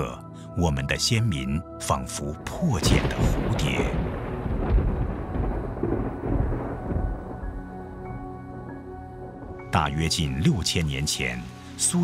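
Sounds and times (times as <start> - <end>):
rumble of thunder: 2.8 - 8.1.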